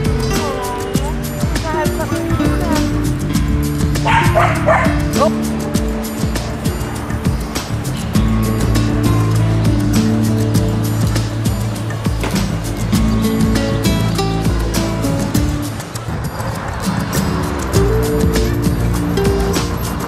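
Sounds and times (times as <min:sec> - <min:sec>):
background music: 0:00.0 - 0:20.0
puppies yipping and barking: 0:03.8 - 0:06.1.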